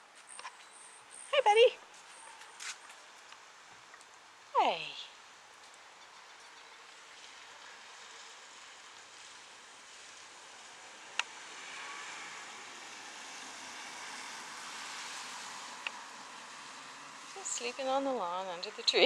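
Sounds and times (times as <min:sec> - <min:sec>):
steady outdoor hiss: 0:00.0 - 0:19.0.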